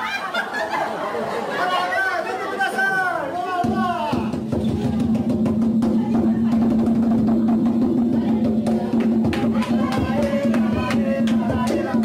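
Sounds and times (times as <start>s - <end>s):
excited chatter of adults and children: 0.0s - 12.0s
drum roll: 3.6s - 12.0s.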